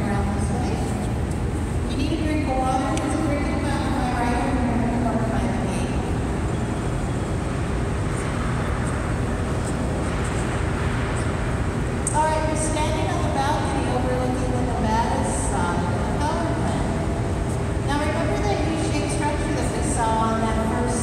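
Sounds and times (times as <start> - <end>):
turbine generators low rumble: 0.0 - 21.0.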